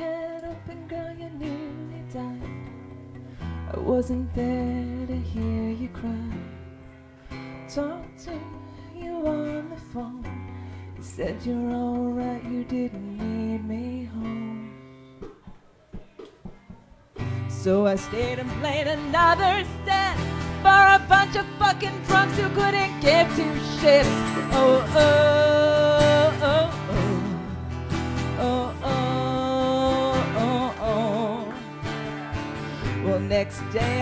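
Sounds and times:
person singing country song: 0:00.0 - 0:15.2, 0:17.2 - 0:34.0
acoustic guitar: 0:00.0 - 0:34.0.

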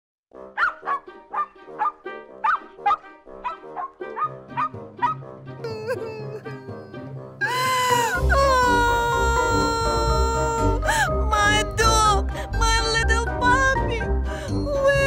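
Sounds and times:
cheerful background music: 0:00.3 - 0:15.0.

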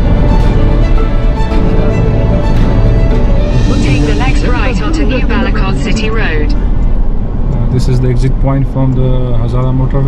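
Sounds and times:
road and engine rumble in cabin: 0:00.0 - 0:10.0.

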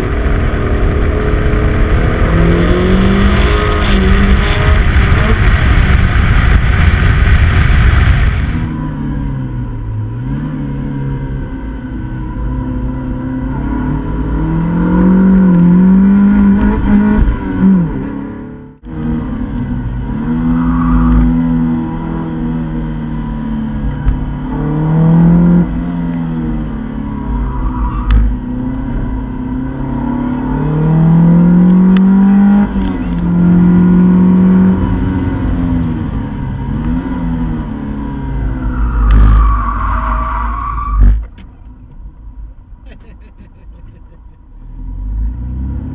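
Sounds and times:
car engine revving hard: 0:00.0 - 0:08.7, 0:12.6 - 0:40.2, 0:44.6 - 0:45.9.

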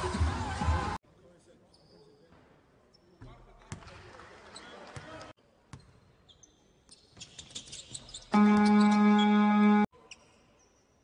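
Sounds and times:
sneaker squeaks: 0:01.6 - 0:03.4, 0:05.7 - 0:09.4, 0:10.0 - 0:11.0.

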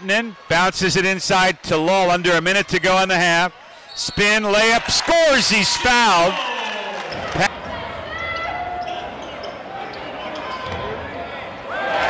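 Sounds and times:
gym crowd hum with voices: 0:03.5 - 0:04.3, 0:05.9 - 0:12.0.

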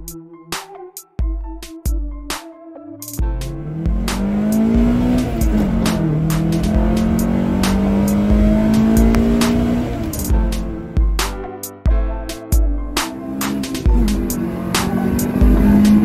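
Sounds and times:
music with steady beat: 0:00.0 - 0:16.0
car engine accelerating: 0:03.2 - 0:11.1, 0:13.0 - 0:16.0.

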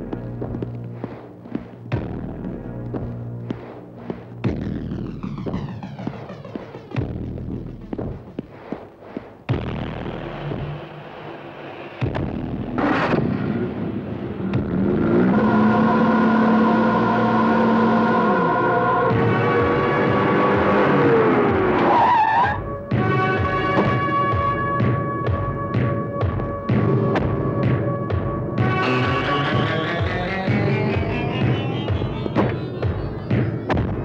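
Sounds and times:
dramatic background music: 0:01.9 - 0:08.3, 0:09.5 - 0:34.0
vehicle engine: 0:10.0 - 0:21.9
falling brake squeal: 0:21.8 - 0:22.6.

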